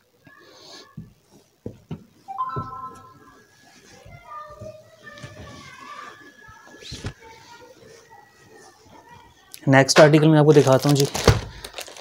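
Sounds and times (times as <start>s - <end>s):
children talking and calling: 0.0s - 12.0s.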